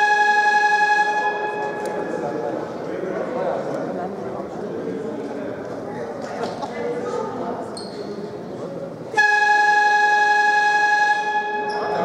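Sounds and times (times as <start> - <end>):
scoreboard buzzer blast: 0.0 - 2.0, 9.2 - 12.0
murmur of voices: 0.0 - 9.4, 11.2 - 12.0.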